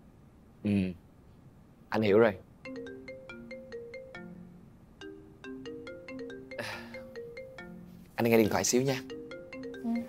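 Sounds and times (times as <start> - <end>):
mobile phone melodic ringtone: 2.7 - 10.0.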